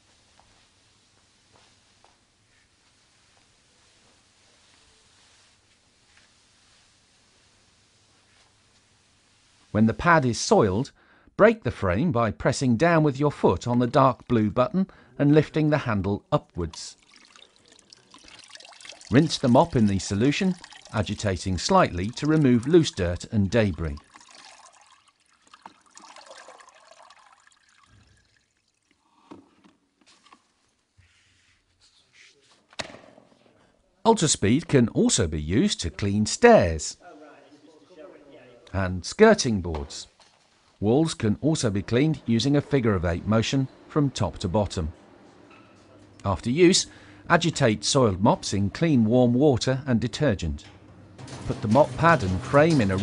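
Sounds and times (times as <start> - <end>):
water trickling in a bucket: 16.6 - 29.3.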